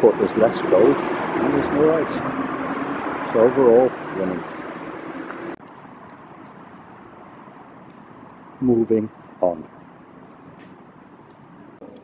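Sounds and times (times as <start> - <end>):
distant traffic hum: 0.0 - 12.0.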